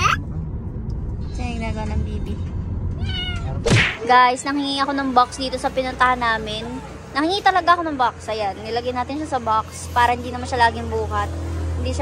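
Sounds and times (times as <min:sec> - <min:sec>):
car interior rumble: 0:00.0 - 0:06.9
kitten meowing: 0:03.0 - 0:03.6.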